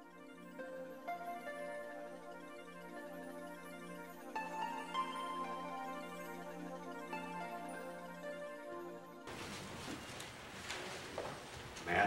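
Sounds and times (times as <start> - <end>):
faint rustles: 9.3 - 12.0
person speaking: 10.7 - 12.0.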